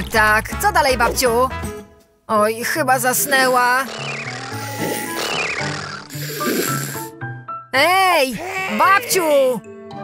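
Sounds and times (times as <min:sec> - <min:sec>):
light background music: 0:00.0 - 0:10.0
rasping cartoon snore: 0:03.2 - 0:07.1.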